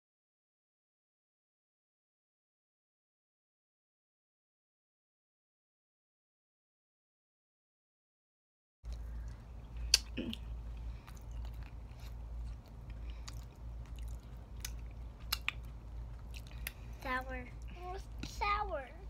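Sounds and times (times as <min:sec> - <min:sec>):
wet chewing smacks and clicks: 0:08.9 - 0:18.4
steady low hum: 0:08.9 - 0:19.0.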